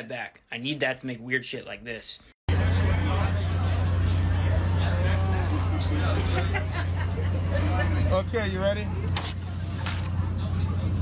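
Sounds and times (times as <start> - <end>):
crowd chatter: 2.5 - 11.0.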